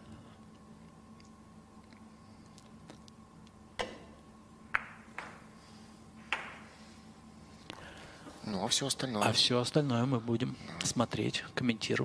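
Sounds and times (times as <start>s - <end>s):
billiard balls clicking: 3.8s - 5.5s, 6.2s - 6.7s
cue striking ball: 4.7s - 5.5s, 6.3s - 6.7s.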